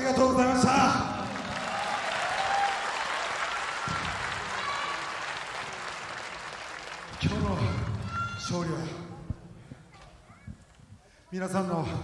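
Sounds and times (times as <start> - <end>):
audience applauding: 1.1 - 8.4.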